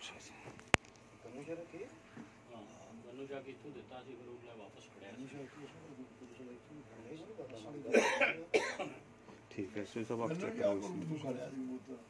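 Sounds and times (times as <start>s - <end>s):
person coughing: 7.9s - 9.0s.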